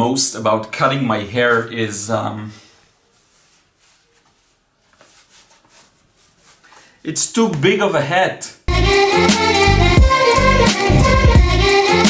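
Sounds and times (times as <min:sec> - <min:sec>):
soft scuffs: 0:02.5 - 0:07.7
cap rustling on head: 0:02.6 - 0:07.0.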